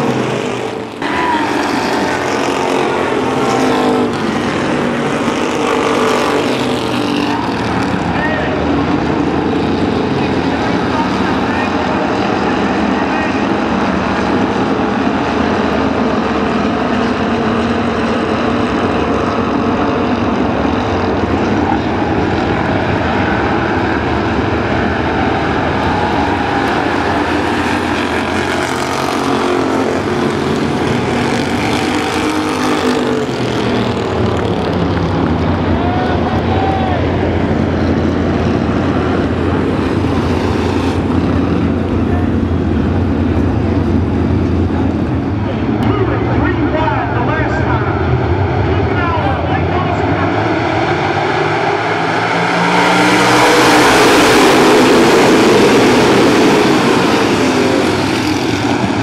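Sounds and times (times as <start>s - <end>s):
race car engines droning: 0.0s - 59.0s.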